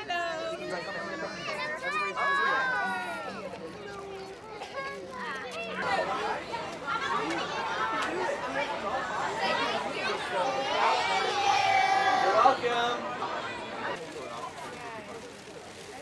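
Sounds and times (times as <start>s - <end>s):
chatter of children and adults: 0.0s - 16.0s.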